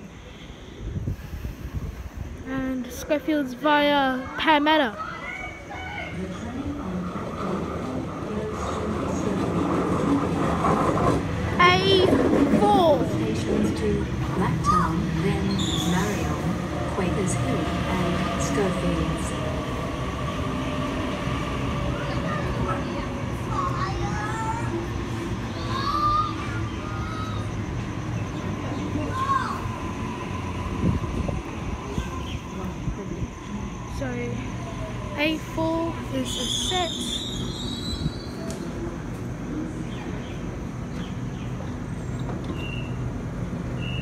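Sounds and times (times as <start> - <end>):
electric train rumble: 0.0 - 44.0.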